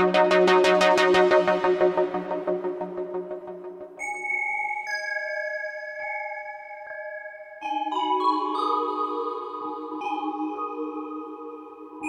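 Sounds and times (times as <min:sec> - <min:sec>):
pulsing synthesizer patch: 0:00.0 - 0:04.0
synthesizer bell notes: 0:00.0 - 0:06.5.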